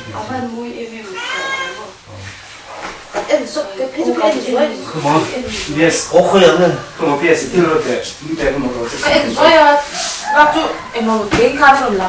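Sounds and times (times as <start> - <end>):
cat meowing: 0.0 - 2.0.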